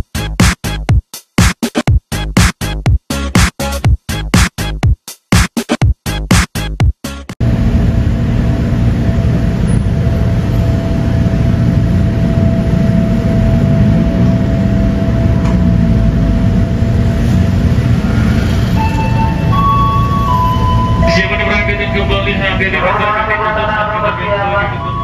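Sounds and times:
electric train rumbling: 0:07.4 - 0:25.0
steady hum: 0:07.4 - 0:25.0
short electronic tones: 0:18.7 - 0:22.2
person speaking: 0:21.0 - 0:25.0.

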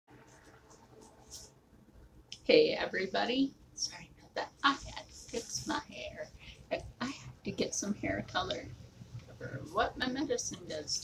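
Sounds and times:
hair rustling and scratching: 0:00.2 - 0:01.6, 0:04.5 - 0:06.3.

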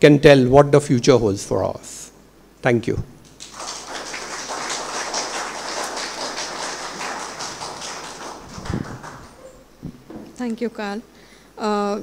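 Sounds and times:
audience applauding: 0:03.3 - 0:09.6.

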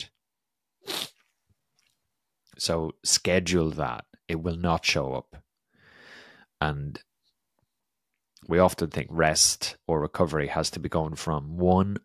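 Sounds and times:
man breathing in: 0:05.7 - 0:06.5.

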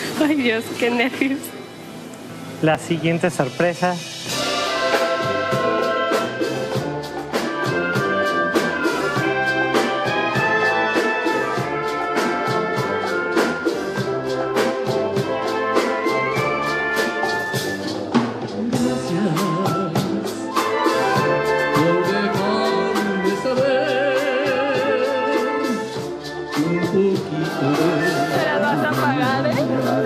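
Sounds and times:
percussion beat: 0:03.4 - 0:30.0
brass horns playing melody: 0:04.3 - 0:30.0.

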